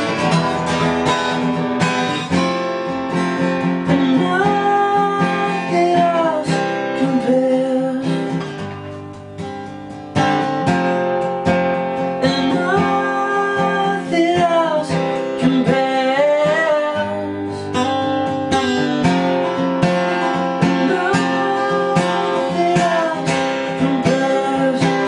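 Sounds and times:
acoustic guitar strumming: 0.0 - 25.0
man singing: 3.8 - 8.4, 12.2 - 17.9, 20.6 - 25.0.

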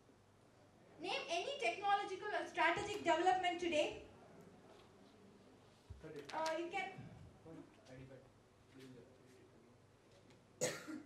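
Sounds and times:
short sharp cough: 10.6 - 11.0.

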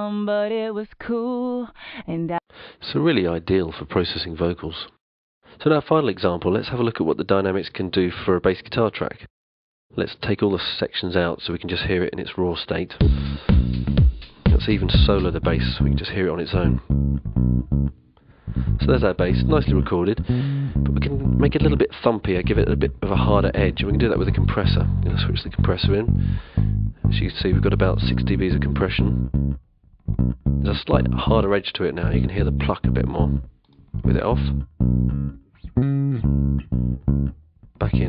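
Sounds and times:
plucked bass guitar notes: 13.0 - 38.0.

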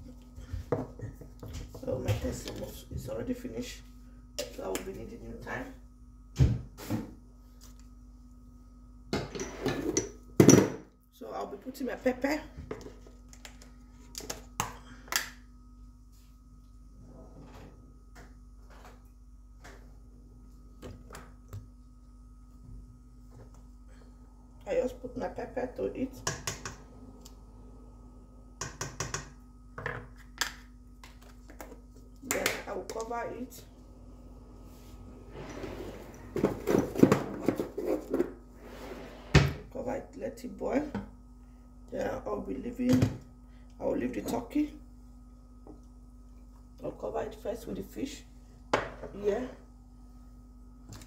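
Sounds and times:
faint steady hum: 0.0 - 51.0
kitchen things clicking and tapping: 26.2 - 26.8, 28.6 - 33.1.

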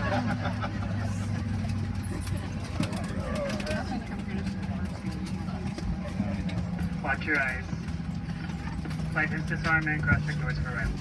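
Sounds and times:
aircraft steady low hum: 0.0 - 11.0
passengers talking: 0.0 - 11.0.

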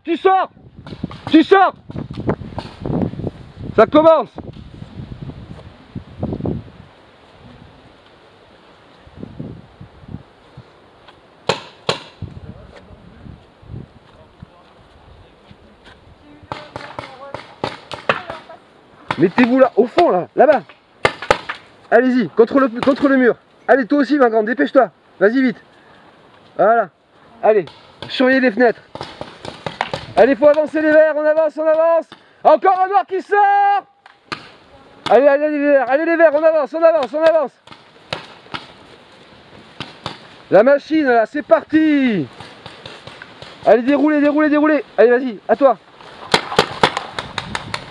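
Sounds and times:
faint outdoor background hiss: 0.0 - 47.9
paintball gun cracks: 46.2 - 47.9.

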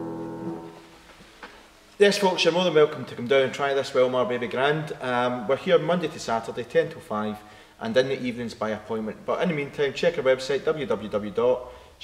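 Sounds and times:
piano chord: 0.0 - 0.9.

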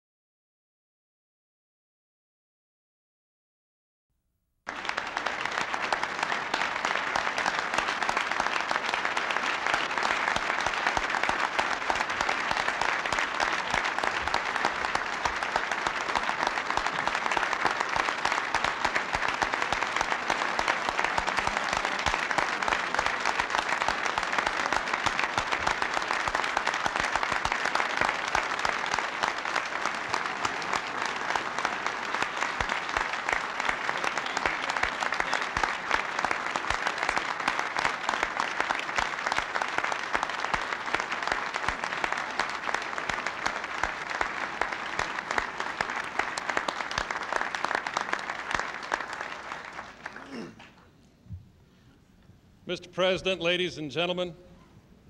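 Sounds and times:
large audience applauding: 4.7 - 51.0.

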